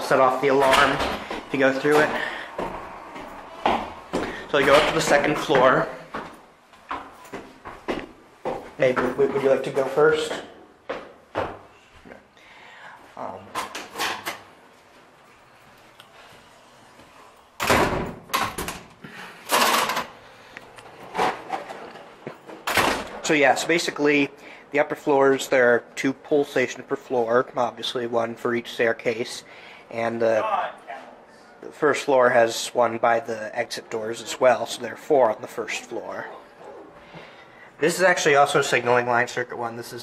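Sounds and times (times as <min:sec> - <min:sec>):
footsteps climbing stairs: 0:00.4 - 0:11.7.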